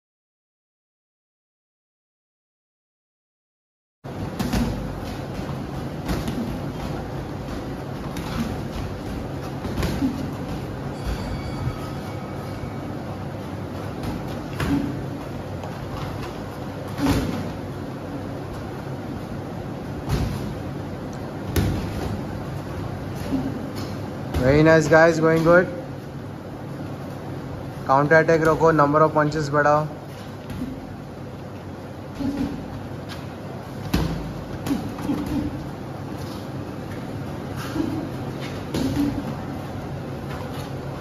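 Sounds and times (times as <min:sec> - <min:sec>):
steady background noise: 0:04.0 - 0:41.0
room noise: 0:04.1 - 0:41.0.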